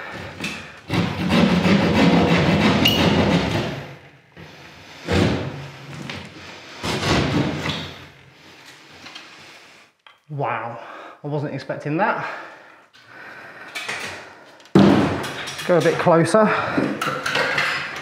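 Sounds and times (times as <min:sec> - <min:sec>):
thuds: 0:14.7 - 0:15.3.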